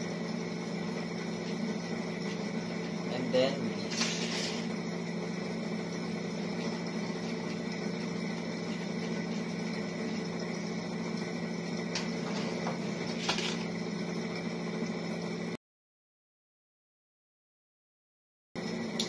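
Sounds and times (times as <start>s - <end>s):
room hum: 0.0s - 15.6s.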